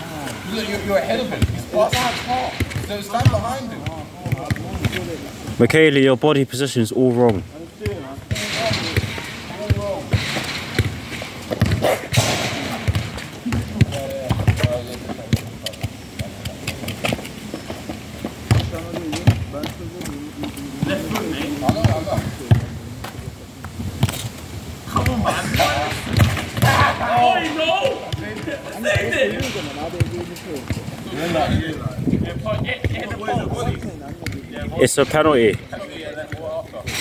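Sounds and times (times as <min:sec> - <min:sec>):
voices calling out: 0:00.0 - 0:37.0
football thudding on tarmac: 0:01.3 - 0:05.6, 0:07.2 - 0:20.2.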